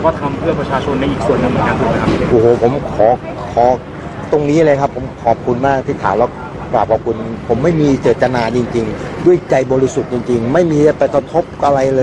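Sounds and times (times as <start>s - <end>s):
man speaking: 0.0s - 12.0s
steady low background noise: 0.0s - 12.0s.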